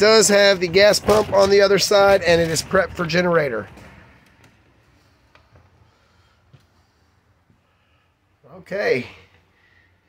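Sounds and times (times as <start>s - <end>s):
footsteps and bumps: 0.0s - 5.8s.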